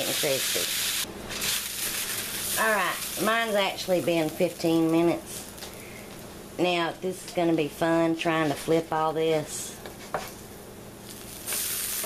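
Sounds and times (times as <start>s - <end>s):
loud sizzle of frying: 0.0s - 6.6s, 9.5s - 12.0s.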